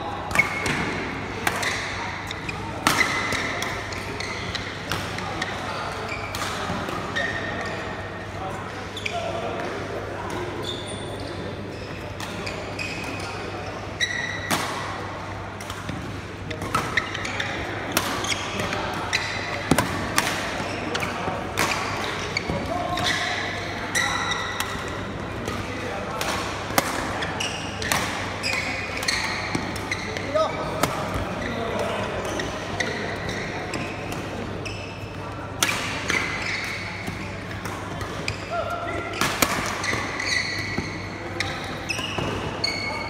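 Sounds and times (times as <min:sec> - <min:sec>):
shoes squeaking on court: 0:10.4 - 0:14.5, 0:27.2 - 0:35.3, 0:36.1 - 0:43.0.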